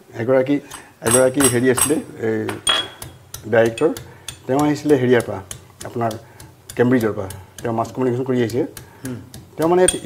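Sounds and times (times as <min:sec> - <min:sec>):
man talking: 0:00.0 - 0:02.8, 0:03.4 - 0:10.0
kitchen utensils clinking: 0:00.7 - 0:05.3, 0:09.6 - 0:10.0.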